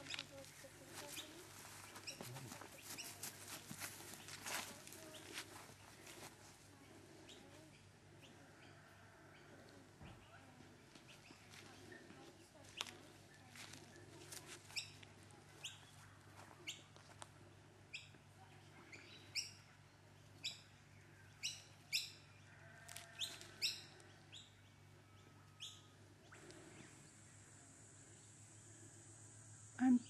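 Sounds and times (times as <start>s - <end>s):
bird chirping: 18.9s - 22.4s, 23.2s - 28.7s
insect hiss: 26.3s - 30.0s.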